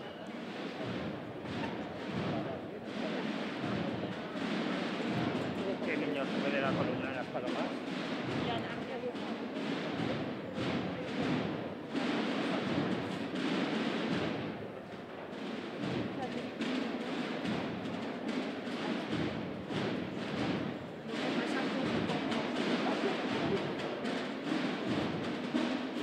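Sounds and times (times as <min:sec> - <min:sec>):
murmur of street crowd: 0:00.0 - 0:26.0
procession band drumbeats and music: 0:00.0 - 0:26.0.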